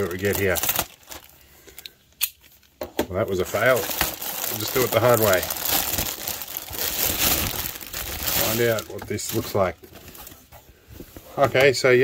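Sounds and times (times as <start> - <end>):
plastic packaging crinkling: 0.0 - 1.9, 3.2 - 10.5
sharp plastic crackle: 0.0 - 2.7, 3.3 - 10.2.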